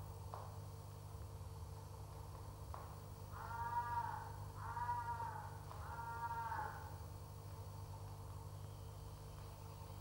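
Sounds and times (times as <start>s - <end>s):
steady low hum: 0.0s - 10.0s
high-pitched animal calls: 3.4s - 6.9s.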